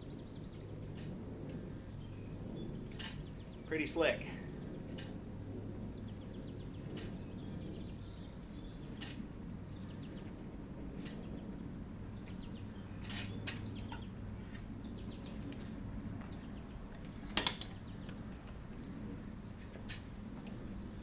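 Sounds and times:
birds chirping: 0.0s - 21.0s
low outdoor hum: 0.0s - 21.0s.

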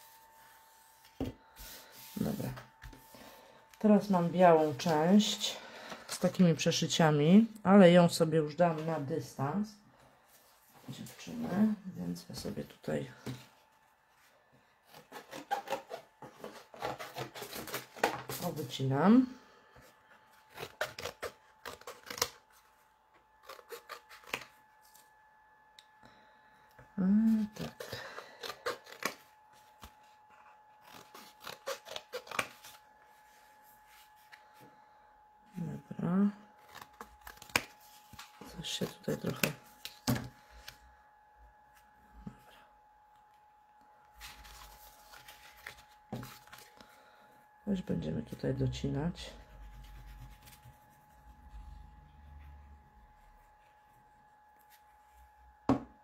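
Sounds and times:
paper rustling: 44.1s - 46.9s.

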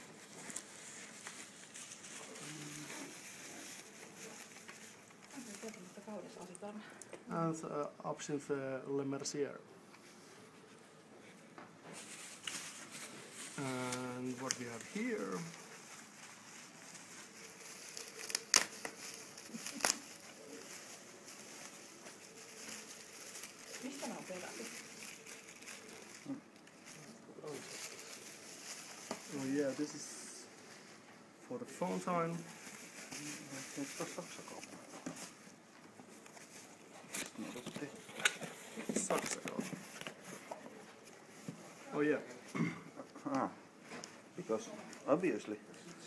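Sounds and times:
bubble wrap rustling and crackling: 0.0s - 6.8s, 10.0s - 46.0s.

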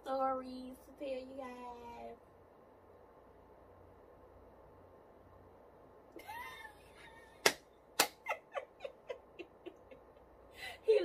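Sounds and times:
woman laughing: 6.2s - 7.4s, 8.2s - 11.0s.

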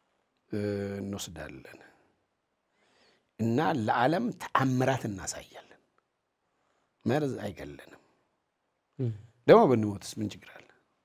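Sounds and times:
man speaking: 0.5s - 1.9s, 3.4s - 5.8s, 7.0s - 8.0s, 9.0s - 10.7s.

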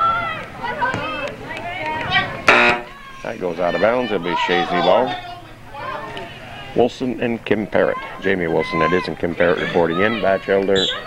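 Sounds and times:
voices calling out: 0.0s - 11.0s.

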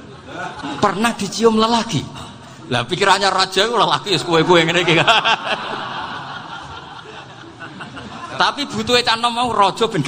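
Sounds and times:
audience laughter: 4.2s - 8.8s.

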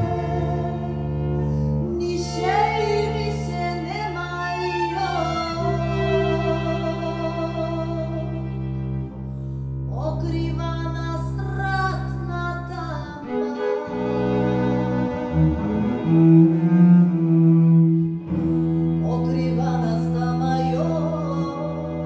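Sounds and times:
bowed double bass: 0.0s - 22.0s
violin: 0.0s - 22.0s.

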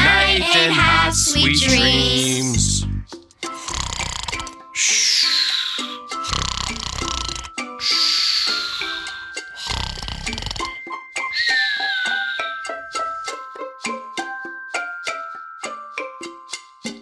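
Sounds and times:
light children's music: 0.0s - 17.0s
cartoon snoring: 3.5s - 10.8s
falling high whistle: 11.4s - 12.6s.

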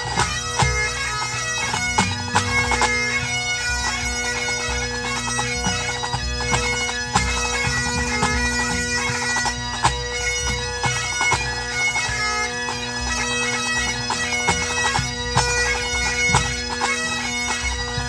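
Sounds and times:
bagpipes playing: 0.0s - 18.0s
drums striking in time: 1.8s - 3.5s.

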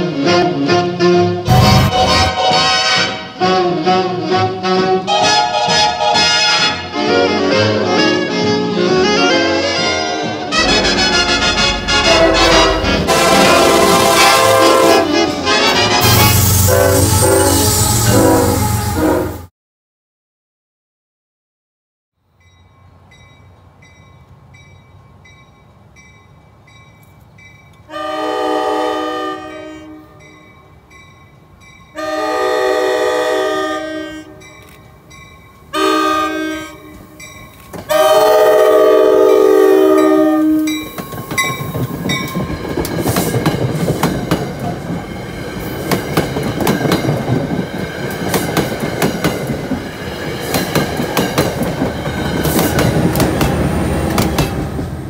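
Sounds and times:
train horn blasts: 0.0s - 19.5s, 27.9s - 30.4s, 31.9s - 34.5s, 35.7s - 41.0s
crossing bell ringing: 10.5s - 16.5s, 22.2s - 28.4s, 30.0s - 32.5s, 34.3s - 43.0s
train wheels clattering over rails: 40.7s - 55.0s.

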